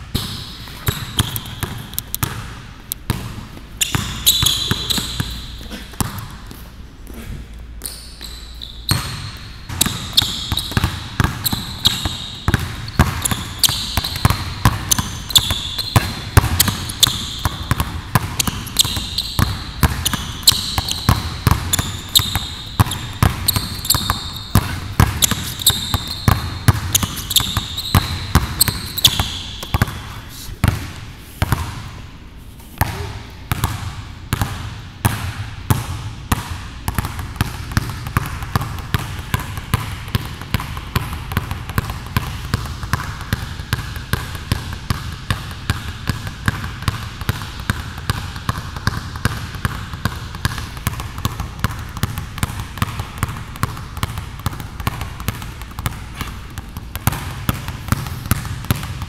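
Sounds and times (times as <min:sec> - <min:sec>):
basketballs bouncing on hardwood: 0:00.1 - 0:06.4, 0:07.8 - 0:32.0, 0:32.8 - 0:59.0.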